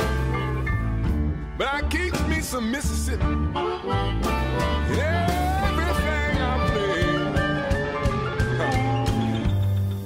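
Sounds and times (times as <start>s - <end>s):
country blues guitar band: 0.0s - 10.0s.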